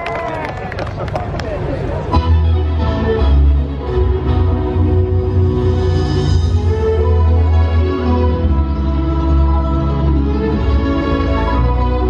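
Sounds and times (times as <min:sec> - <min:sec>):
crowd murmur: 0:00.0 - 0:06.3.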